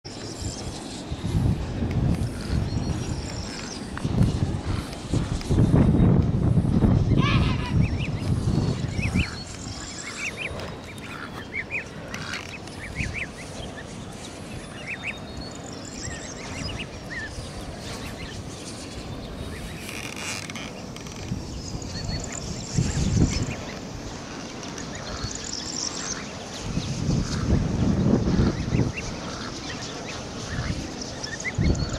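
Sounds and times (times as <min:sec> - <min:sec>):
wind gusts on microphone: 0:00.1 - 0:31.9
goslings and ducklings peeping: 0:02.1 - 0:05.0, 0:07.0 - 0:18.5, 0:24.6 - 0:31.9.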